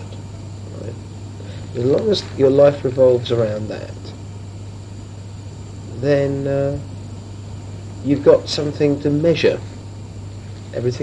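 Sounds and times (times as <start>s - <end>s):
faint high whine: 0.0s - 11.0s
recording hum and hiss: 0.0s - 11.0s.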